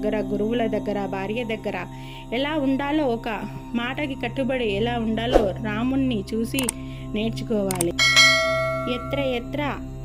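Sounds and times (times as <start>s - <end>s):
low steady drone: 0.0s - 10.0s
bell ringing: 8.0s - 9.4s.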